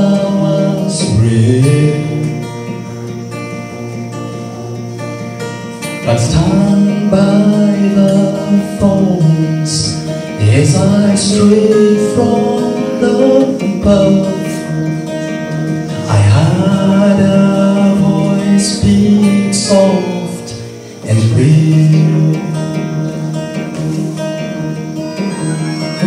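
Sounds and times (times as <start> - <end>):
man singing: 0.0 - 2.9, 6.0 - 14.9, 15.9 - 24.0
acoustic guitar strumming: 0.0 - 26.0.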